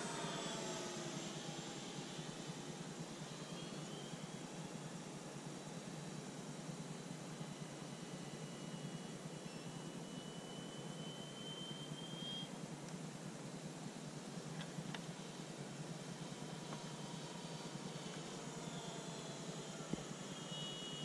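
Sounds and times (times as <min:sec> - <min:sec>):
distant model airplane whine: 0:00.0 - 0:21.0
outdoor background noise: 0:00.0 - 0:21.0.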